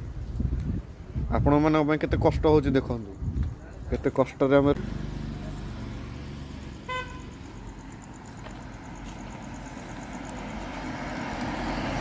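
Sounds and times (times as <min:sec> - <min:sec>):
low engine hum: 0:04.7 - 0:12.0
vehicle horn toot: 0:06.8 - 0:07.4.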